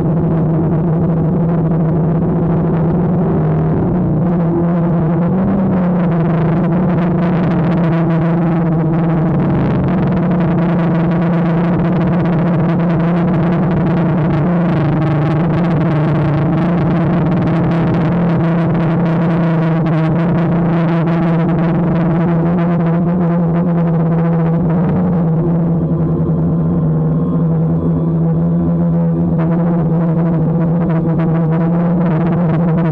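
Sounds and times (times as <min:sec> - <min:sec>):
drone propellers buzzing: 0:00.0 - 0:32.9.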